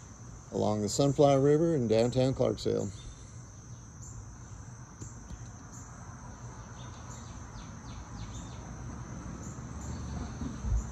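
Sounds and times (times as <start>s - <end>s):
high-pitched insect chorus: 0.0s - 10.9s
short insect chirps: 2.2s - 10.9s.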